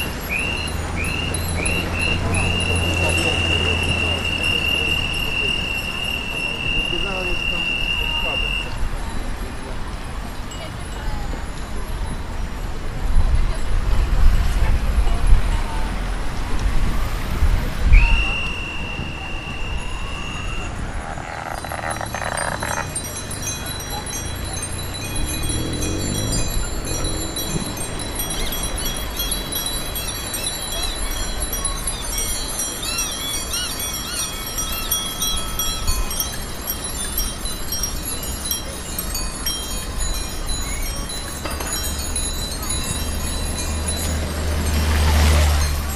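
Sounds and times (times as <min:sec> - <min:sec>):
bicycle bells ringing: 0:00.0 - 0:15.6, 0:16.7 - 0:45.9
wind rumble on microphone: 0:08.6 - 0:33.5
steady high-pitched tone: 0:17.8 - 0:30.0.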